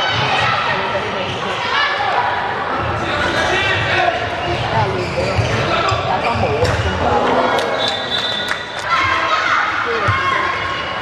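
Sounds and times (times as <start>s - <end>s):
ball bouncing on indoor court: 3.7s - 8.3s, 10.0s - 10.6s.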